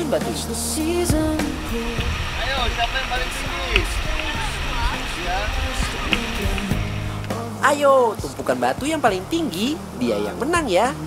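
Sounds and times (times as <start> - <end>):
river rushing over stones: 0.5 - 8.8
children chattering and calling: 1.2 - 7.4.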